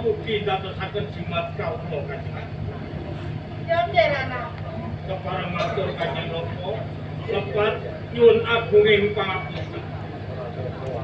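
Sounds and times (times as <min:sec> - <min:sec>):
faint voices through sound system: 0:00.0 - 0:11.0
steady low hum: 0:00.0 - 0:11.0
man speaking into microphone: 0:05.1 - 0:09.8.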